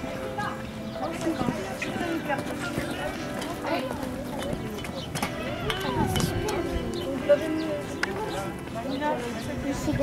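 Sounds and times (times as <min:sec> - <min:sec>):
background music: 0:00.0 - 0:10.0
people talking: 0:00.2 - 0:10.0.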